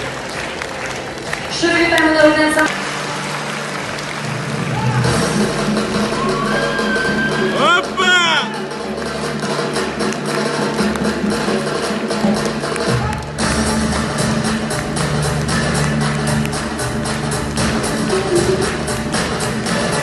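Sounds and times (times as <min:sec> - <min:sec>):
folk dance music: 0:00.0 - 0:20.0
fast steady drumbeat: 0:04.7 - 0:20.0.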